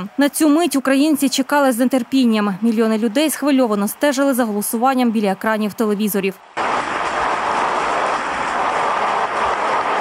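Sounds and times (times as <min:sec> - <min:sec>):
crowd applauding: 0:06.6 - 0:10.0.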